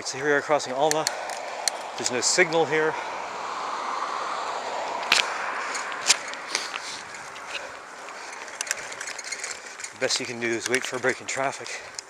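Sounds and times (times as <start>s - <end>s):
rushing road traffic noise: 0.0s - 12.0s.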